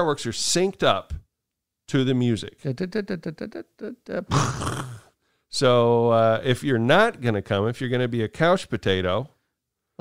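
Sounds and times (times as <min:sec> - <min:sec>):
man chuckling: 0:02.7 - 0:05.1
man sighing: 0:04.1 - 0:05.1.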